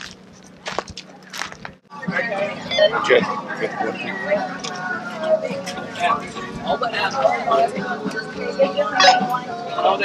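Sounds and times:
footsteps crunching on gravel: 0.0 - 1.9
people talking: 0.6 - 10.0.

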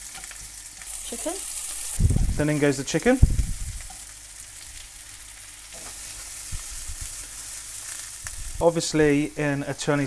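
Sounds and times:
food sizzling in a wok: 0.0 - 10.0.

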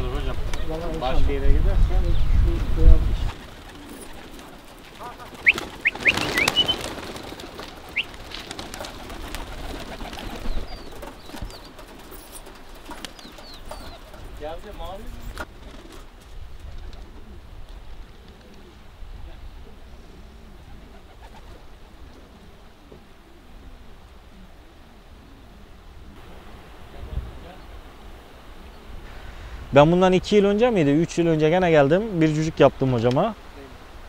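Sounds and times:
pigeons cooing: 2.0 - 16.1, 16.8 - 29.4
high bird chirps: 5.4 - 6.9, 7.9 - 8.2.

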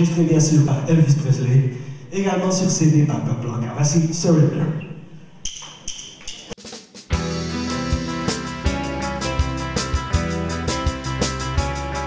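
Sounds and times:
drumsticks clicking together: 5.4 - 6.6.

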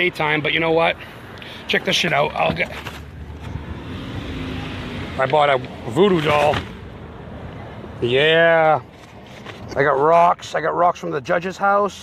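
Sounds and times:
car engine hum: 0.5 - 10.2.

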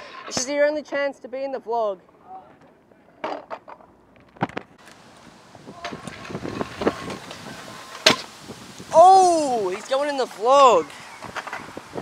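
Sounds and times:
scooter wheels rolling on concrete: 0.0 - 1.1, 2.0 - 12.0
scooter landing clack: 5.8 - 8.3.

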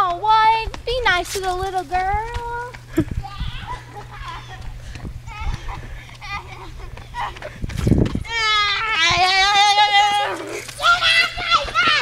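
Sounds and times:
child's wavering high cry: 3.2 - 4.6, 8.2 - 12.0.

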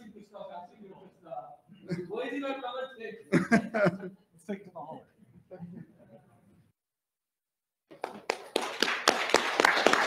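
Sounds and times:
audience clapping: 7.9 - 10.0.

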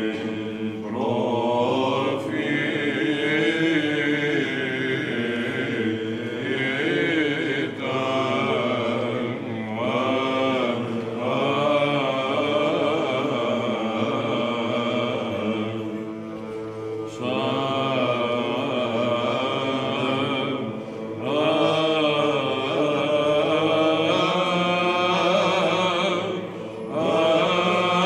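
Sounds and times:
male choir chanting: 0.0 - 28.0.

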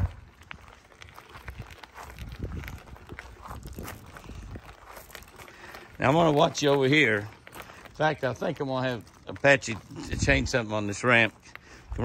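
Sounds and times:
footsteps on gravel: 0.0 - 12.0
wheelchair tyres rolling on gravel: 0.0 - 12.0.

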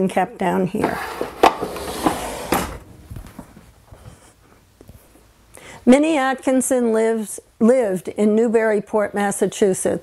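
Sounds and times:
woman speaking: 0.0 - 1.0, 5.8 - 10.0
wooden drawer scraping shut: 0.8 - 2.9.

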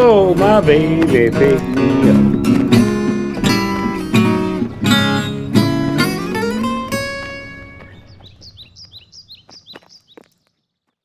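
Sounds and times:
acoustic guitar chord: 0.0 - 7.8
bird chirping: 1.2 - 11.0.

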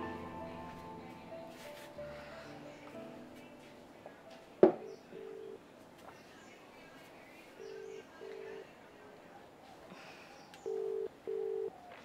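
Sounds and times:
telephone ringback tone: 10.6 - 11.7.

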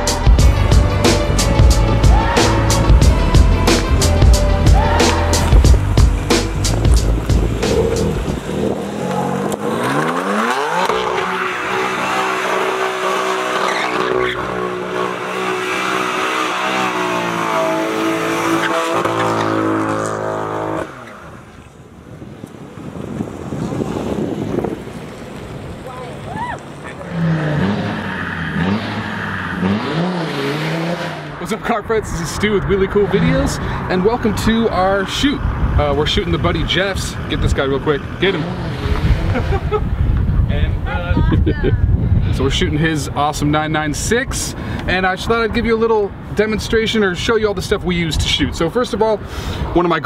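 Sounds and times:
car engine revving: 0.0 - 21.8, 22.7 - 40.1
tyres spinning and squealing: 4.6 - 21.9, 25.0 - 39.6.

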